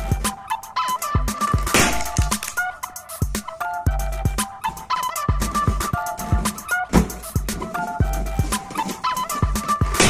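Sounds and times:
upbeat background music: 0.0s - 10.0s
balloon squeezed in gloved hands: 1.5s - 2.7s
balloon bursting: 1.6s - 2.8s.

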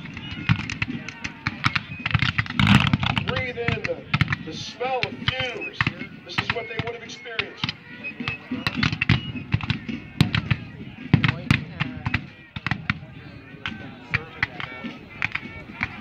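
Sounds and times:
musket fire: 0.0s - 4.7s, 8.7s - 14.6s
voices talking: 0.0s - 16.0s.

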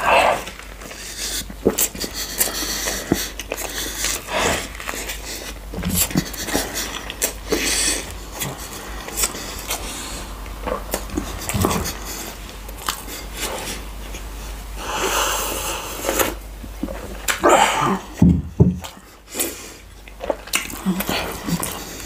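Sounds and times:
chewing clicks: 20.0s - 21.8s.

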